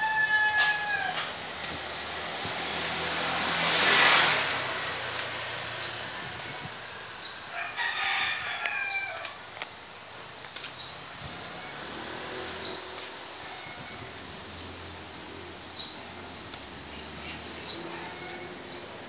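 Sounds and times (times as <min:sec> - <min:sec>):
rooster crowing: 0:00.0 - 0:01.4, 0:07.5 - 0:09.5, 0:13.4 - 0:14.2, 0:17.9 - 0:18.9
rushing noise: 0:00.8 - 0:07.6.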